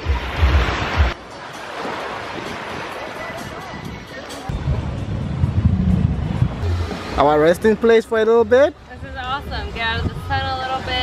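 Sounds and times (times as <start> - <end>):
surf washing on beach: 0.0 - 8.2
wind buffeting microphone: 2.2 - 7.2, 8.5 - 11.0.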